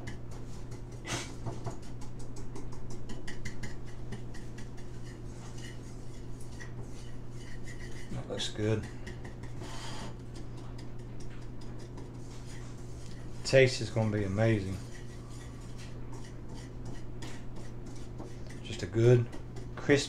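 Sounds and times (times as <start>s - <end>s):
wire whisk scraping a bowl: 3.0s - 20.0s.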